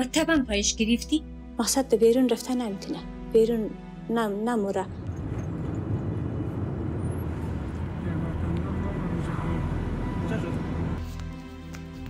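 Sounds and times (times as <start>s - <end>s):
car engine and road noise: 4.9s - 11.4s.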